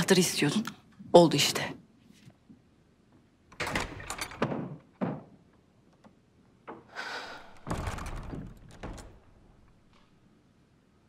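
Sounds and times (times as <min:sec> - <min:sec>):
wooden door opening and shutting: 0:03.5 - 0:10.3.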